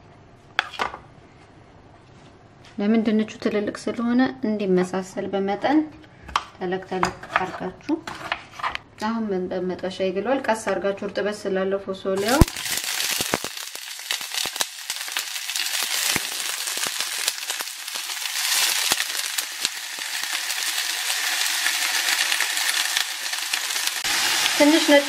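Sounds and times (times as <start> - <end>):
beans sizzling in oil: 12.2 - 25.0.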